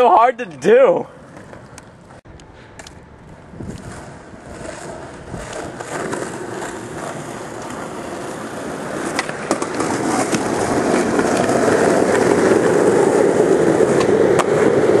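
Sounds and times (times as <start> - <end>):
skateboard wheels rolling on concrete: 0.0 - 15.0.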